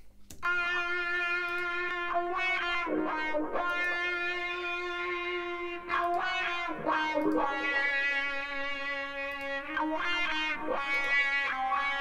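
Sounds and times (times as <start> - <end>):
electric guitar solo with wah: 0.4 - 12.0.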